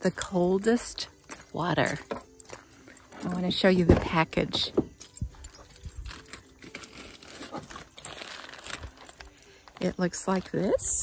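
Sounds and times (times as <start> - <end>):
plastic bag crinkling: 5.4 - 11.0.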